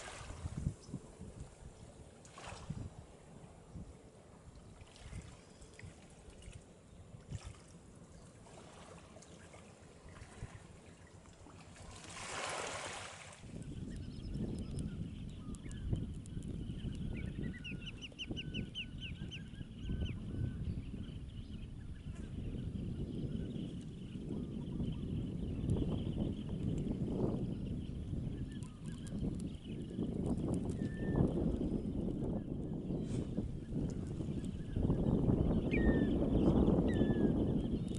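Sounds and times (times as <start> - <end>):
wind on microphone: 0.0 - 7.6, 11.8 - 37.9
faint bird chirps: 13.5 - 37.9.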